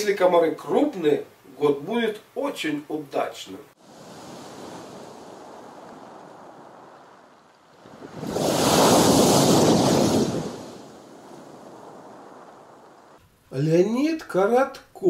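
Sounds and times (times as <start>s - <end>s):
surf washing on pebble beach: 3.8s - 13.2s
wave breaking loudly: 3.8s - 13.2s.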